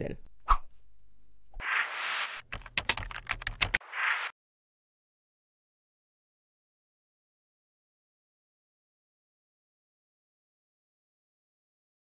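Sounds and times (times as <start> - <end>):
keyboard typing: 2.4 - 3.8.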